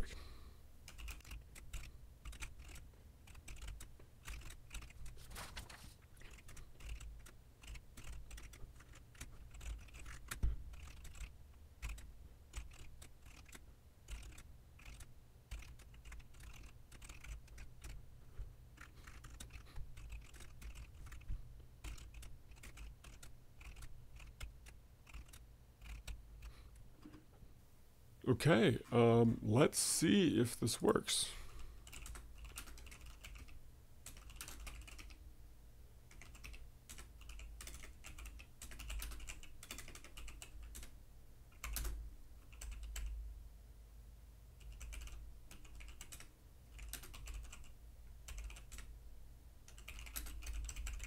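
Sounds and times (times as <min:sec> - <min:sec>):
typing on computer keyboard: 0:00.9 - 0:05.2, 0:06.2 - 0:18.0, 0:18.8 - 0:26.5, 0:31.8 - 0:35.2, 0:36.1 - 0:40.9, 0:41.5 - 0:43.2, 0:44.6 - 0:48.9, 0:49.6 - 0:51.0.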